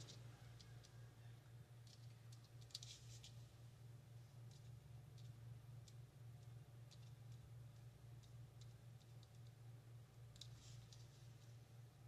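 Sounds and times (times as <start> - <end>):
small plastic clicks: 0.0 - 1.0, 1.8 - 3.4, 4.4 - 9.6, 10.3 - 11.5
steady low hum: 0.0 - 12.0.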